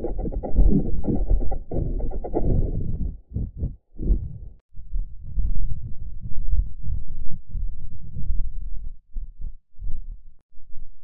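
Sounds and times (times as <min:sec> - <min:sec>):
muffled low rumbling bursts: 0:00.0 - 0:11.0.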